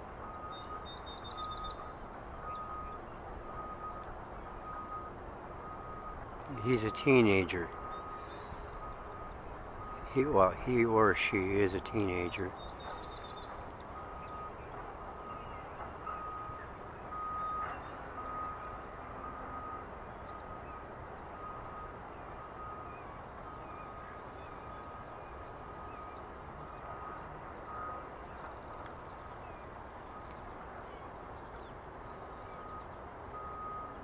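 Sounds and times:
low steady background rush: 0.0s - 34.0s
faint high beep pulses: 0.2s - 10.8s, 15.2s - 20.7s, 21.4s - 28.2s, 32.2s - 34.0s.

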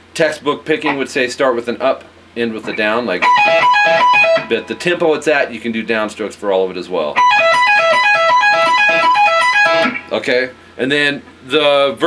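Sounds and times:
electric guitar lead figure: 2.6s - 5.0s, 7.2s - 10.1s.

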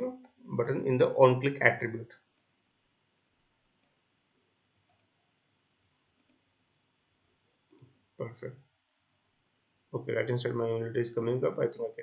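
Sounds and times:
faint mouse clicks: 2.3s - 2.6s, 3.8s - 4.0s, 4.9s - 5.2s, 6.2s - 6.4s, 7.7s - 8.0s.

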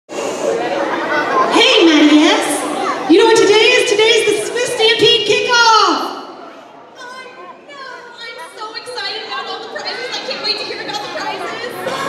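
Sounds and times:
chatter of many voices: 0.1s - 12.0s.

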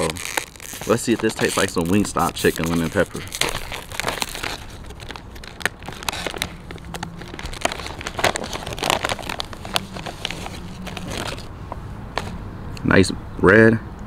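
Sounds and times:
plastic chip bag crackling: 0.0s - 11.5s.

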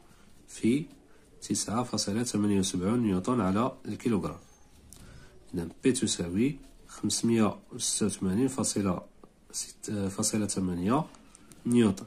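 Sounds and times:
man speaking: 0.3s - 4.6s, 5.4s - 12.0s.

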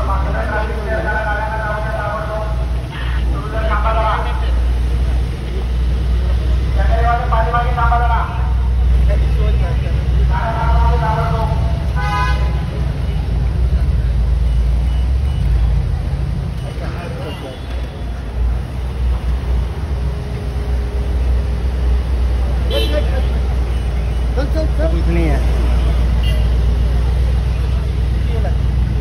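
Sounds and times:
car engines rumbling: 0.0s - 29.0s.

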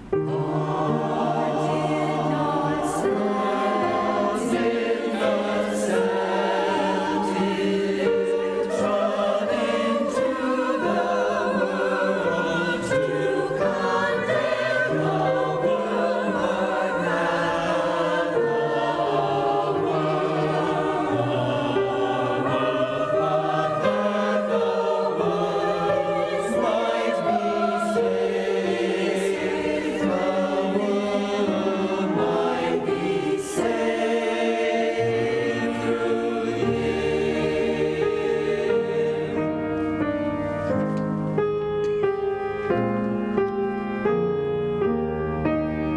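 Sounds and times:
mixed choir singing: 0.0s - 40.3s.

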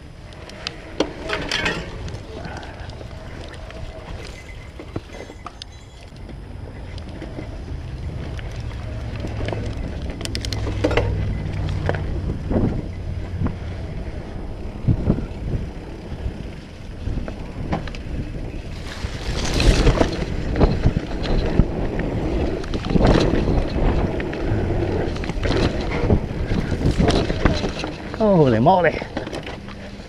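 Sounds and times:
bike knocking and rattling: 0.0s - 30.0s
bike tyres rolling on dirt: 0.0s - 30.0s
wind buffeting microphone: 0.0s - 30.0s.

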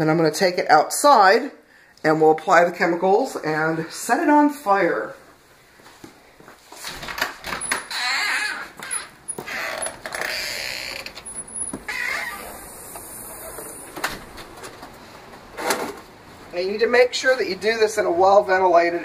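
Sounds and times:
shuffling footsteps: 5.1s - 7.0s.

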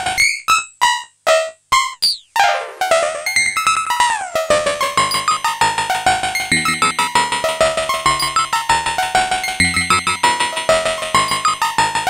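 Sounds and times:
synthesizer playing short notes: 6.5s - 7.3s, 9.6s - 10.2s.

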